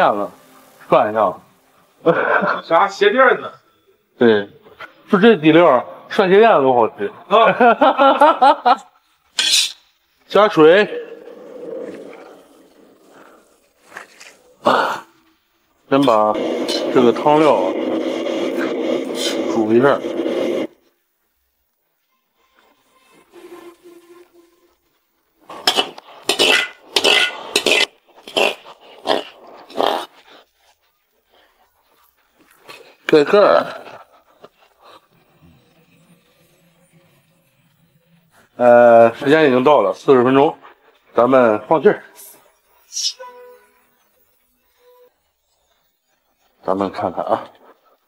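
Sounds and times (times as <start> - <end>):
pressure cooker steam hiss: 15.9 - 20.8, 25.5 - 30.0, 42.2 - 43.2
metal spatula scraping in wok: 16.4 - 20.7, 22.4 - 24.8, 25.4 - 29.3
brief faint tone: 43.2 - 44.0.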